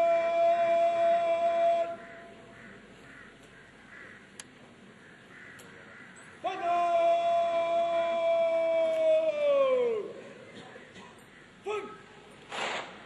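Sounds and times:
shouted parade command: 0:00.0 - 0:02.4, 0:06.4 - 0:10.2, 0:11.6 - 0:12.1.

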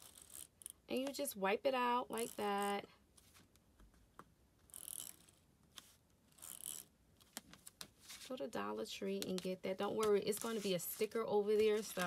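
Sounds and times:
correction tape scratching on paper: 0:00.0 - 0:00.8, 0:02.1 - 0:02.7, 0:04.7 - 0:07.4, 0:09.2 - 0:12.0.

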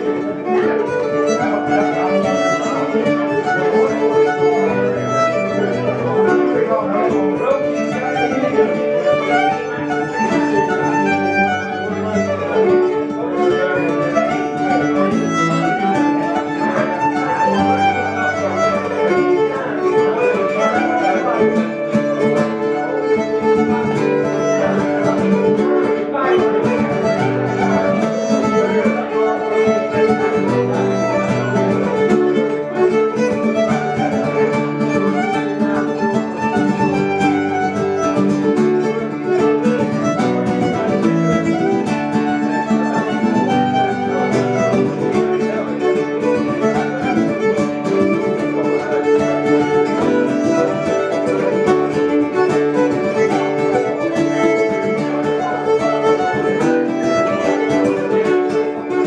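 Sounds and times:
fiddle playing a jig: 0:00.0 - 0:59.0
strummed acoustic guitar: 0:00.0 - 0:59.0.

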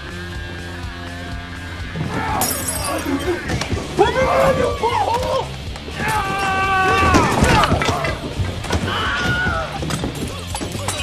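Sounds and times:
background music: 0:00.0 - 0:11.0
glass shattering: 0:02.4 - 0:03.6, 0:06.0 - 0:11.0.

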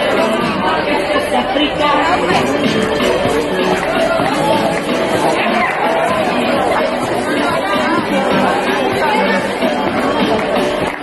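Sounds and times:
crowd of young people chattering: 0:00.0 - 0:11.0.

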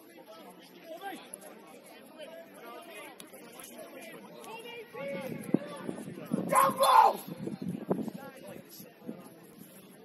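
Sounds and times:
spectators chatting: 0:00.0 - 0:10.0.

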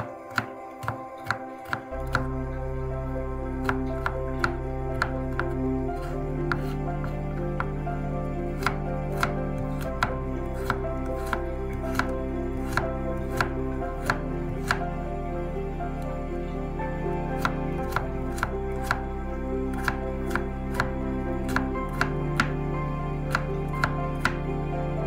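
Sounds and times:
knife chopping on cutting board: 0:00.0 - 0:02.3, 0:03.6 - 0:06.8, 0:08.6 - 0:14.8, 0:17.4 - 0:19.0, 0:19.8 - 0:20.9, 0:21.5 - 0:22.6, 0:23.3 - 0:24.4.

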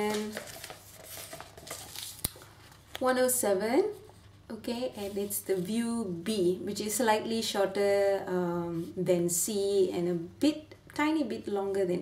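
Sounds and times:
magazine pages rustling: 0:00.0 - 0:03.1.

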